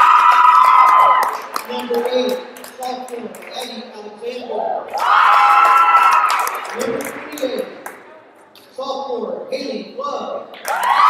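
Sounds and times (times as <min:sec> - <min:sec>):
sharp claps: 0:05.6 - 0:08.0.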